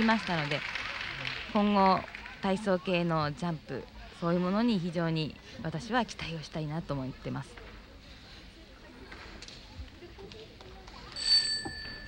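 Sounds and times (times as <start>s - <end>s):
faint arena murmur: 0.0s - 12.0s
bell ringing: 11.1s - 12.0s.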